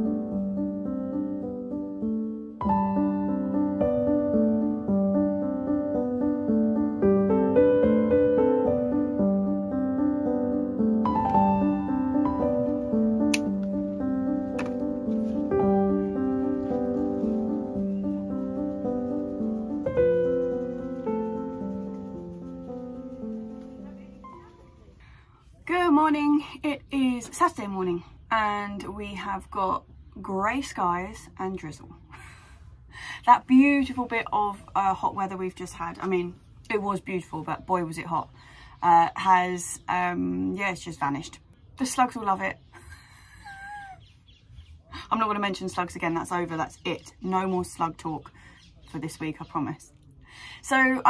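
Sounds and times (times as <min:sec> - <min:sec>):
gentle instrumental music: 0:00.0 - 0:31.7
faint bird call: 0:42.8 - 0:45.0.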